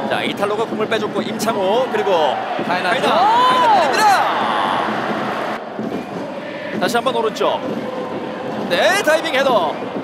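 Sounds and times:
stadium crowd noise: 0.0s - 10.0s
commentator shouting: 2.7s - 4.9s.

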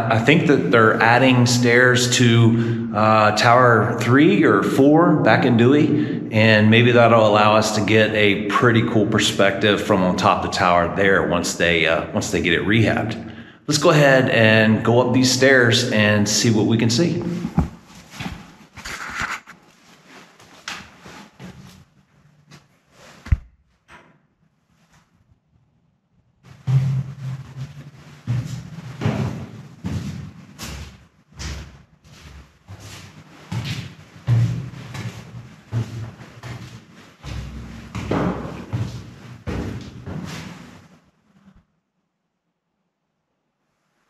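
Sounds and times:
footsteps on steel staircase: 17.2s - 18.7s, 26.5s - 41.0s.

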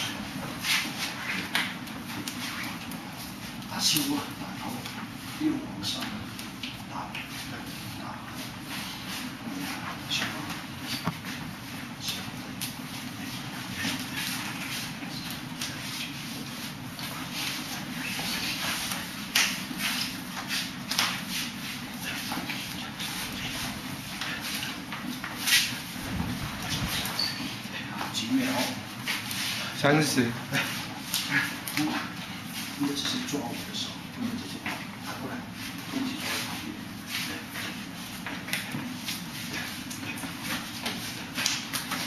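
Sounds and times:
shuffling feet: 0.0s - 42.0s
steady low hum: 0.0s - 42.0s
hands and forearms slapping: 18.9s - 21.2s.

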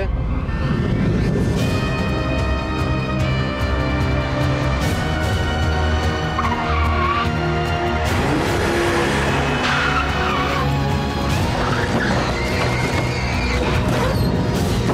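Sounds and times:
background music: 0.0s - 14.9s
car tyres squealing: 6.3s - 7.4s, 8.3s - 14.9s.

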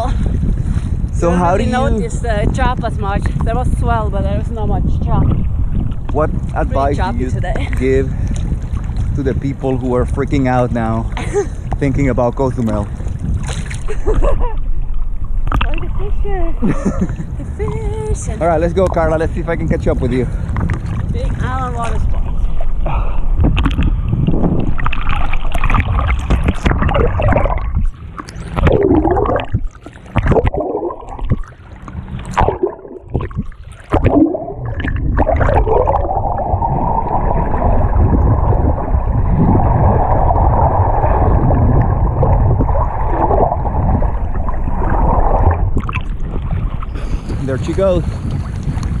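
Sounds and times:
muffled rush of water: 0.0s - 49.0s
sea water sloshing and splashing: 0.0s - 49.0s
underwater bubbling and gurgling: 0.0s - 49.0s.

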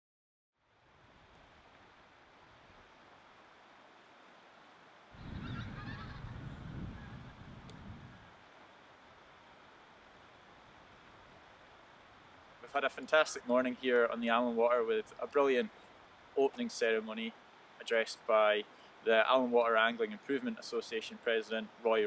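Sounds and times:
faint outdoor hiss: 0.6s - 22.0s
geese honking: 5.2s - 7.3s.

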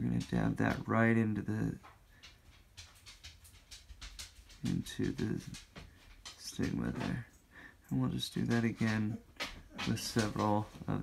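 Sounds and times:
faint breathy sounds: 7.3s - 8.0s.

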